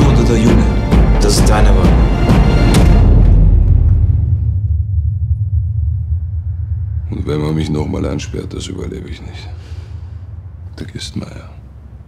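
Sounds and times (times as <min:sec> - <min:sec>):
deep low rumble: 0:02.6 - 0:12.0.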